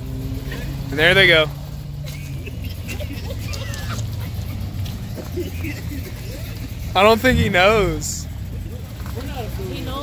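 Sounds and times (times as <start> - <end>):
car engines idling: 0.0 - 10.0.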